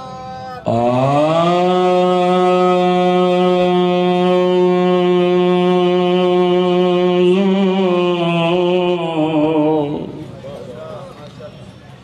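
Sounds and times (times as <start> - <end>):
man singing a long note: 0.0 - 10.3.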